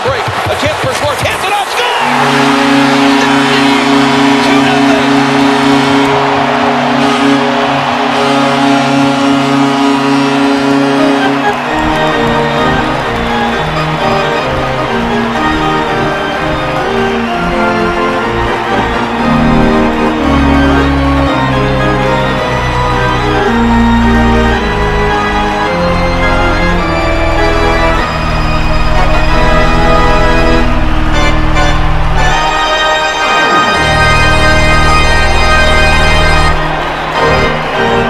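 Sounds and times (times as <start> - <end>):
crowd cheering: 0.0 - 38.0
song over arena loudspeakers: 0.0 - 38.0
goal horn chord: 2.0 - 38.0.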